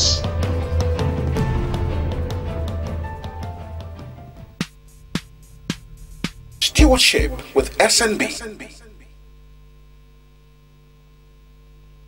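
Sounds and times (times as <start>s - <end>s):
electrical mains hum: 4.6s - 12.0s.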